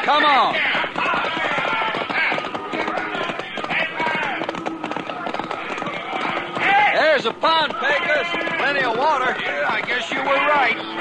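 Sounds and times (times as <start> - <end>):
horse hoofbeats galloping: 0.0 - 11.0.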